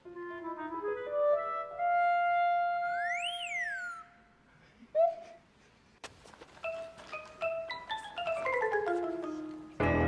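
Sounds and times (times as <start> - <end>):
sliding whistle-like tone: 2.8 - 4.3.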